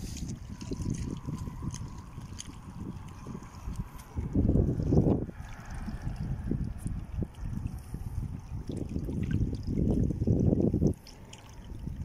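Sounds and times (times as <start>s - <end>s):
waves lapping against rocks: 0.0s - 12.0s
wind rumbling on microphone: 0.0s - 12.0s.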